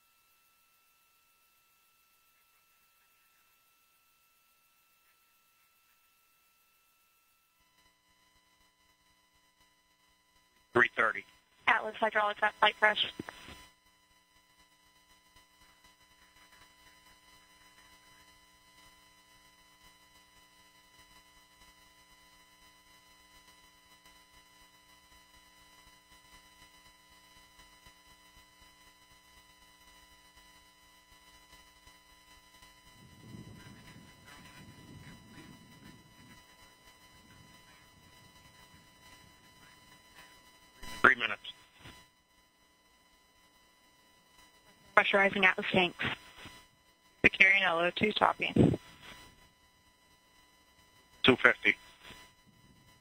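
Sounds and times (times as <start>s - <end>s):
faint hum and static: 0.0s - 53.0s
radio call voice: 10.8s - 13.5s, 40.8s - 41.6s, 45.0s - 46.4s, 47.3s - 48.8s, 51.3s - 51.9s.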